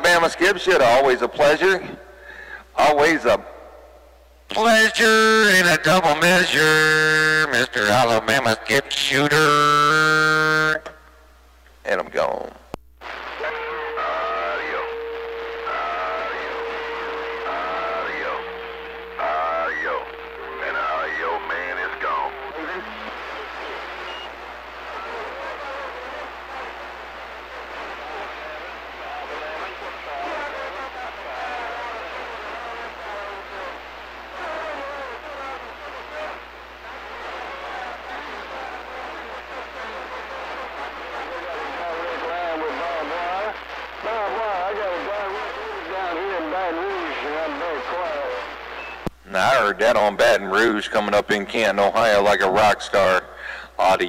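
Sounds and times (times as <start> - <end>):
garbled radio voices: 11.9 - 54.0
steady radio whistle: 13.0 - 49.2.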